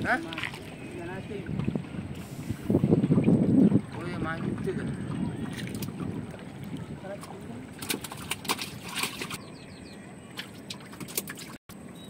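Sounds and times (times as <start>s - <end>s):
wind buffeting microphone: 0.0s - 10.7s.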